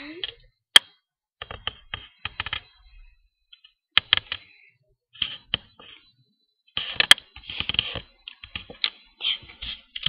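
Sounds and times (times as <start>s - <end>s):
computer keyboard typing: 0.8s - 2.8s.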